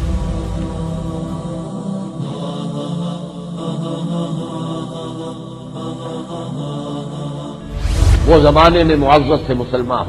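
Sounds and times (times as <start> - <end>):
person chanting verses: 0.0 - 10.0.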